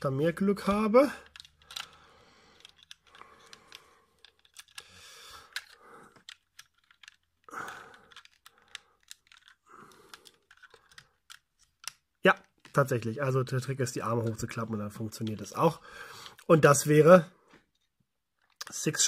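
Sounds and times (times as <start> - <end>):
plastic toy clicks: 1.2 - 13.0.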